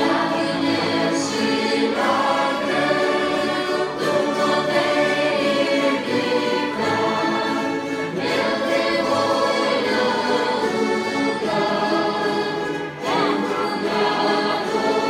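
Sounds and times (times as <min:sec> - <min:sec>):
string orchestra playing slow piece: 0:00.0 - 0:15.0.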